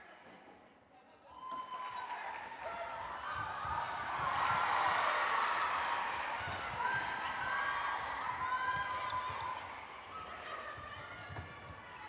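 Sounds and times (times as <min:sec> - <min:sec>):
crowd noise in hall: 0:00.0 - 0:12.0.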